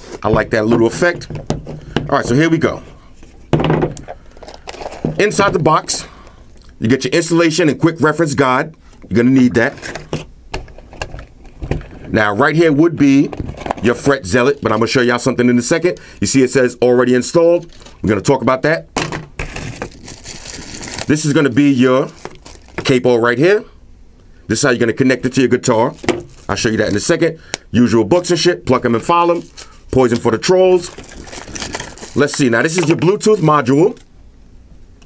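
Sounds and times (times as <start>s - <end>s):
plastic bag rustling: 0.0s - 6.2s, 17.6s - 18.1s, 19.1s - 23.0s, 25.8s - 27.2s, 28.7s - 33.5s.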